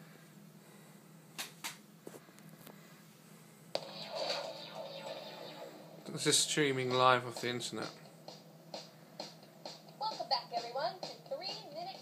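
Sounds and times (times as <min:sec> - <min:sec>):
faint video audio from tv speakers: 0:03.8 - 0:12.0.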